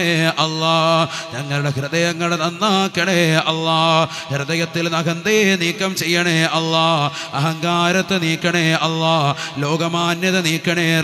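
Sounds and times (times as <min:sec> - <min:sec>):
man chanting into microphone: 0:00.0 - 0:11.0.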